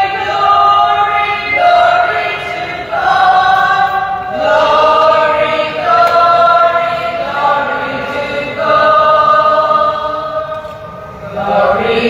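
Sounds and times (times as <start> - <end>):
group singing long held notes: 0.0 - 12.0.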